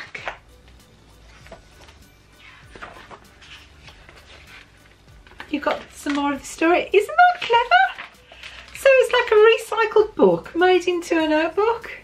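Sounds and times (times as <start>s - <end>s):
notebook pages turning: 0.0s - 6.4s, 7.2s - 9.4s
woman talking: 5.4s - 8.1s, 8.8s - 12.0s.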